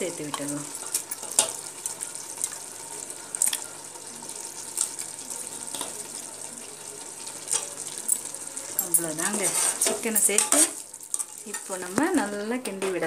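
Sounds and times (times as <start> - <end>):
frying sizzle: 0.0 - 13.0
spoon scraping metal pot: 7.5 - 11.8.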